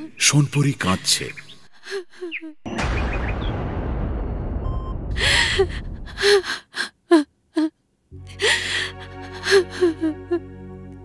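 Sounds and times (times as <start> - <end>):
woman crying: 1.8 - 2.7, 5.2 - 10.5
low rumbling sound effect: 2.7 - 6.2
gasping sobs: 5.2 - 10.4.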